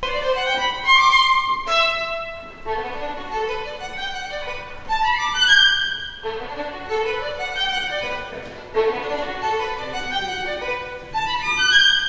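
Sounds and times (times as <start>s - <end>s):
bowed violin melody: 0.0s - 12.0s.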